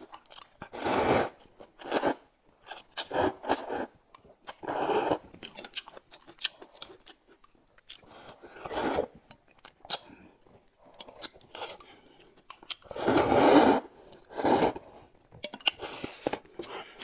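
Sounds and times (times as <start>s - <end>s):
chewing: 0.0s - 13.0s, 15.2s - 17.0s
loud slurping of noodles: 0.7s - 2.3s, 4.6s - 5.2s, 8.6s - 9.1s, 12.9s - 15.0s.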